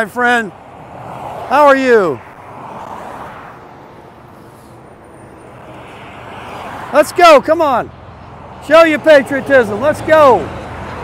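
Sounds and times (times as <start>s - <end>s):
traffic passing: 0.0s - 11.0s.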